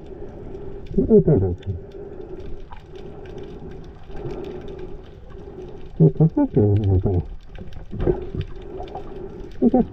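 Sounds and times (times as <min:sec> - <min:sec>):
faint scattered clicks: 0:00.0 - 0:09.9
underwater low hum: 0:00.0 - 0:09.9.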